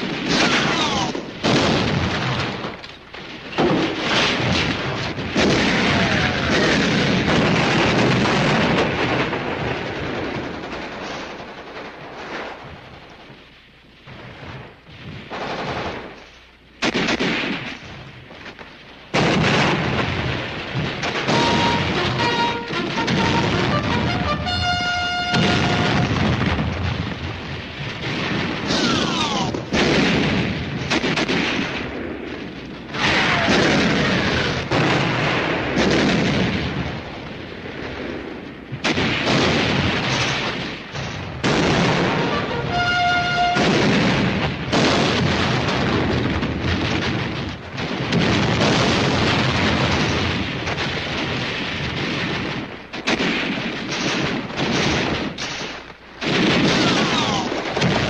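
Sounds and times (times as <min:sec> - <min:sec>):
gunfire: 0:00.0 - 0:13.4, 0:14.1 - 0:58.0
artillery explosions: 0:00.0 - 0:58.0.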